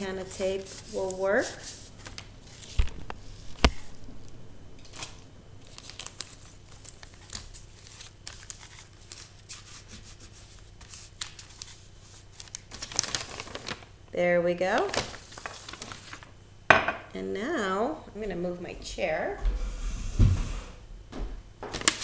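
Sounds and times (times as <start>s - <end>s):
tape tearing and crackling: 4.8s - 9.7s, 10.9s - 13.9s, 14.8s - 16.3s
paper rustling: 4.9s - 13.9s, 14.8s - 16.3s.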